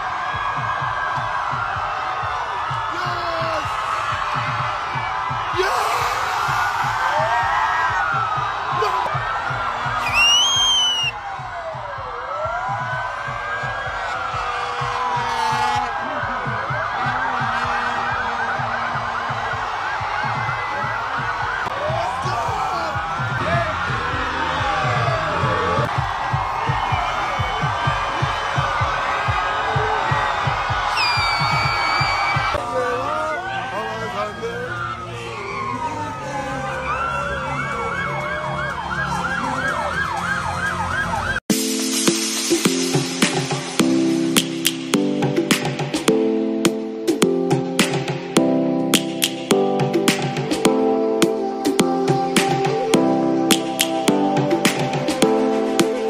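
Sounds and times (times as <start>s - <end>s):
police sirens wailing: 0.0s - 41.5s, 49.5s - 56.0s
noisy crowd: 0.0s - 56.0s
sharp loud whistle: 10.0s - 11.2s, 31.0s - 32.5s.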